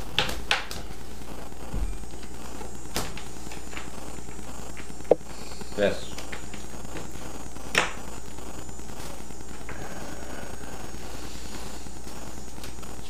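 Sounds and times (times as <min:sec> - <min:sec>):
mechanical whir with low hum: 0:00.0 - 0:13.0.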